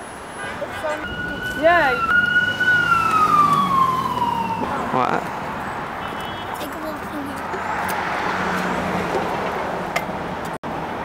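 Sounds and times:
road traffic: 0.0s - 11.0s.

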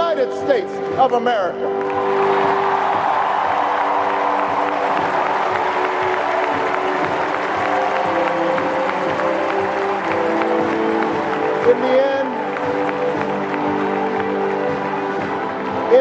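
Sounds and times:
background music chords: 0.0s - 16.0s
recorded crowd applause and cheering: 0.0s - 16.0s.

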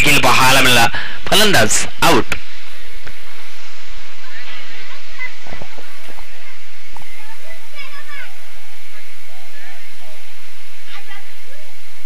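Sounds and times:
loud background hiss: 0.0s - 12.0s.

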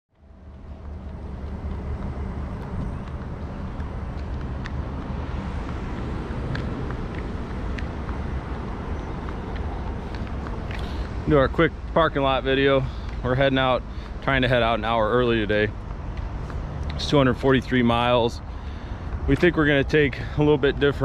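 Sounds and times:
traffic engine rumble: 0.1s - 21.0s.

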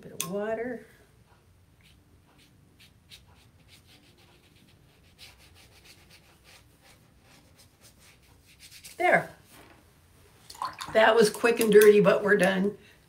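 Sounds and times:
brush strokes on paper: 1.8s - 9.6s.

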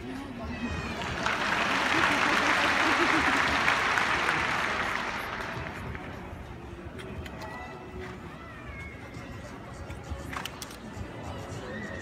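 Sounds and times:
crowd hum: 0.0s - 12.0s.

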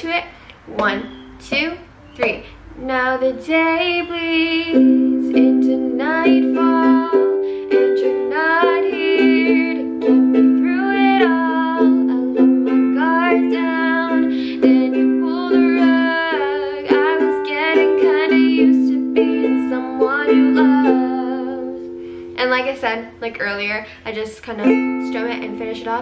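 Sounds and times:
woman singing: 0.0s - 26.0s
ukulele strumming: 3.4s - 23.0s, 24.5s - 26.0s.

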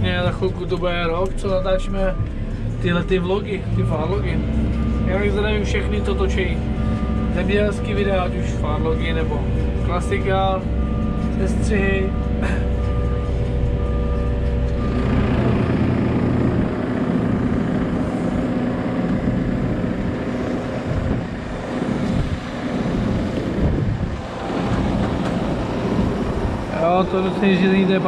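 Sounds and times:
diesel engine running: 0.0s - 28.0s
tractor driving on concrete: 0.0s - 28.0s.

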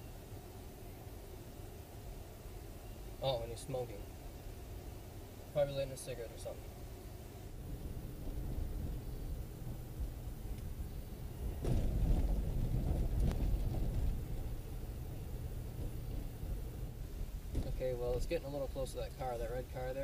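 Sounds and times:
car engine and tyre rumble: 7.2s - 20.0s.

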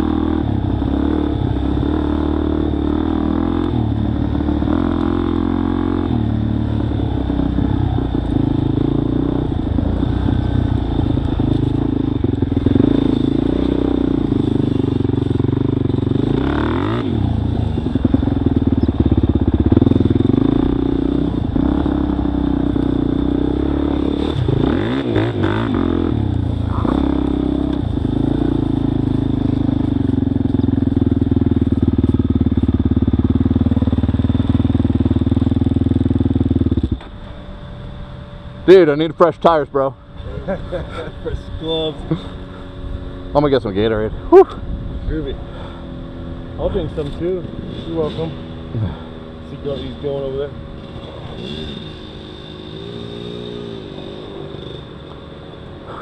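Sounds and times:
dirt bike engine revving: 0.0s - 37.2s, 45.1s - 56.0s.

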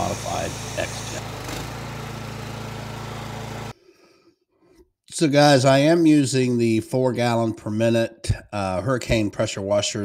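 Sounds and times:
pressure washer engine humming: 0.0s - 3.7s.

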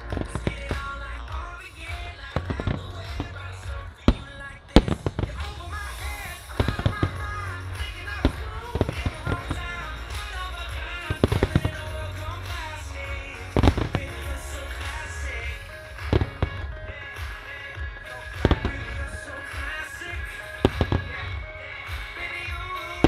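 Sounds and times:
fireworks bursting: 0.0s - 23.0s
music: 0.0s - 23.0s.

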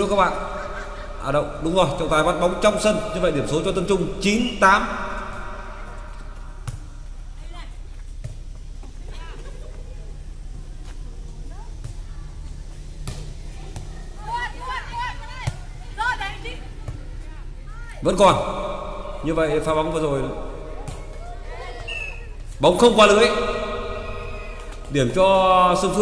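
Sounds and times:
players calling out: 0.0s - 7.1s, 11.3s - 26.0s.

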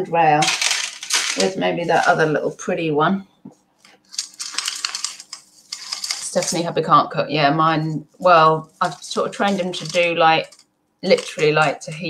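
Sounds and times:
jewellery clinking: 0.4s - 2.2s, 4.1s - 6.6s, 8.8s - 12.0s.

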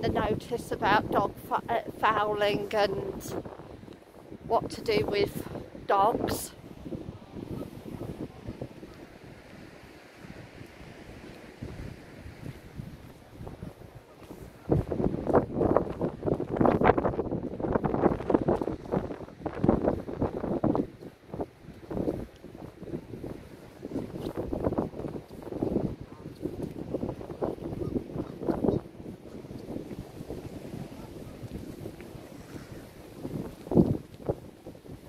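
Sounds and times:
wind buffeting microphone: 0.0s - 35.0s.

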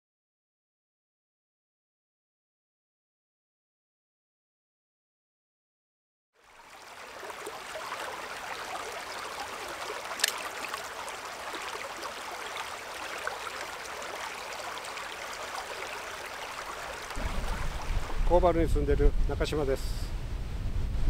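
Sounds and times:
stream babbling over pebbles: 6.4s - 19.4s
sharp click: 10.2s - 10.4s.

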